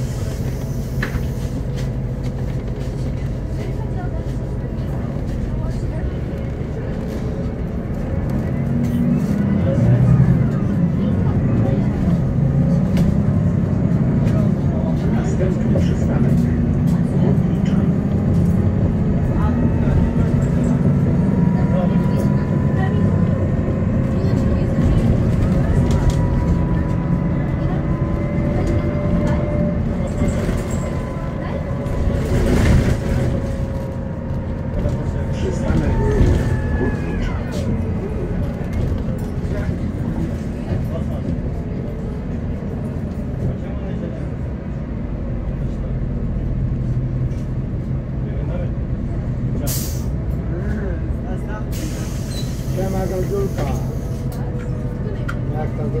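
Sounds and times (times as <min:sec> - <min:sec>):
bus diesel engine drone: 0:00.0 - 0:56.0.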